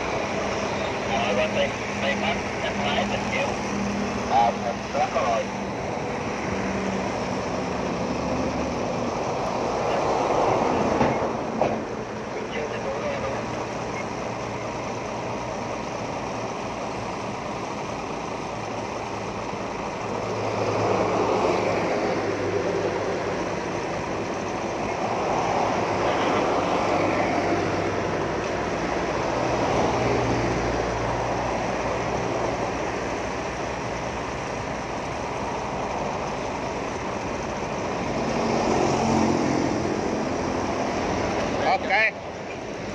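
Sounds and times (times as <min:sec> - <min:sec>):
engine hum: 0:00.0 - 0:42.9
vehicles passing close by: 0:00.0 - 0:42.9.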